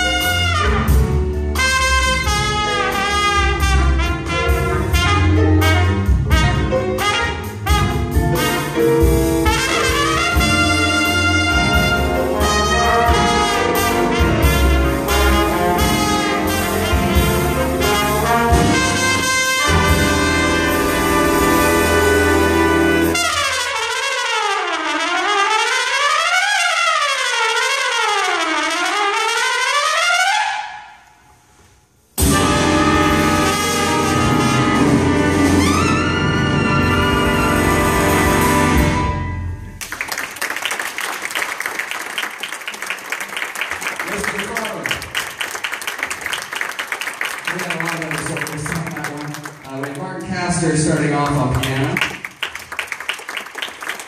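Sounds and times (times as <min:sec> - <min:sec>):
loud trumpets: 0:00.0 - 0:08.8, 0:09.4 - 0:31.3, 0:32.2 - 0:39.7
big band jazz: 0:00.0 - 0:30.7, 0:31.6 - 0:40.2.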